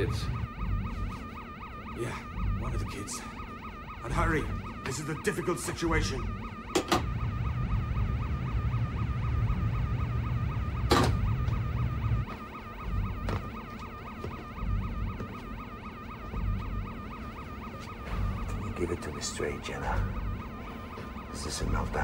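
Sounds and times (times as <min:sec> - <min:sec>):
electronic alarm warbling: 0:00.0 - 0:22.0
low rumble: 0:05.9 - 0:13.6.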